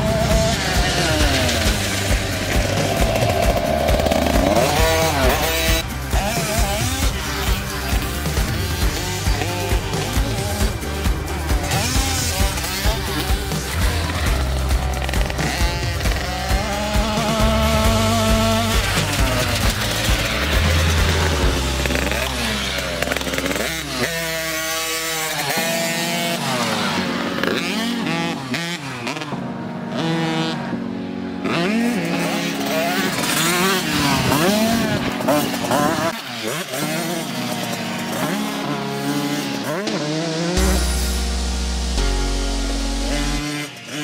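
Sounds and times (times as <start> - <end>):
dirt bike engine revving: 0.0 - 44.0.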